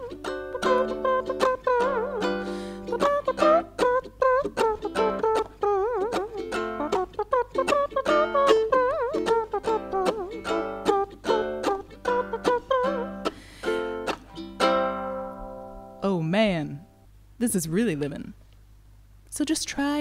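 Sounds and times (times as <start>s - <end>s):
wordless vocal melody: 0.0s - 15.0s
ukulele strumming: 0.0s - 17.0s.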